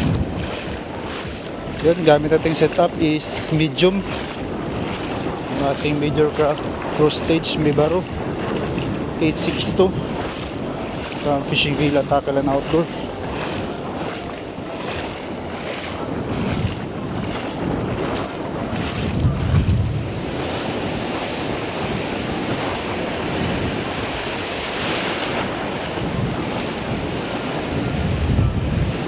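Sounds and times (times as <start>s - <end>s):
ocean surf breaking: 0.0s - 29.0s
splashing steps in shallow water: 0.0s - 29.0s
wind buffeting microphone: 0.0s - 29.0s.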